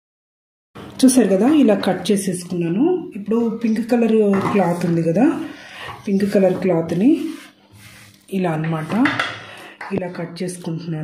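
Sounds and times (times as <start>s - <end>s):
woman speaking: 1.0s - 7.5s, 8.3s - 11.0s.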